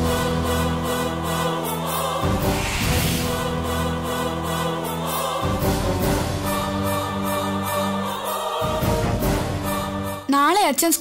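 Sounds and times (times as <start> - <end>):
choir-like chord: 0.0 - 10.3
orchestral strings: 0.0 - 10.3.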